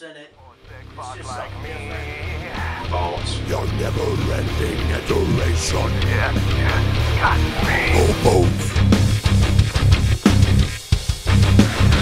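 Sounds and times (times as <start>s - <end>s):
heavy metal guitar and bass riff: 0.7s - 12.0s.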